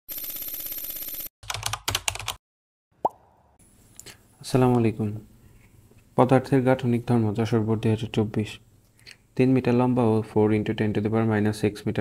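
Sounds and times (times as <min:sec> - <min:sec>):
rising pop: 0:03.0 - 0:03.4.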